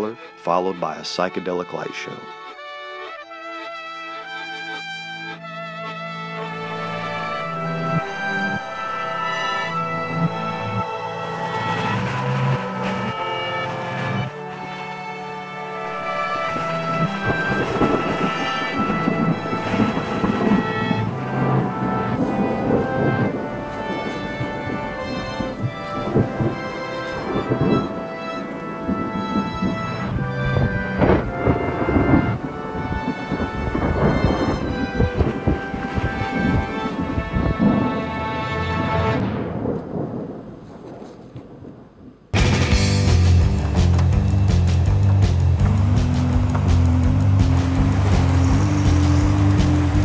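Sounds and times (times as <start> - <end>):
music with sustained tones: 0.0 - 39.4, 42.4 - 50.0
rain: 6.4 - 50.0
thunder rumbling: 6.4 - 50.0.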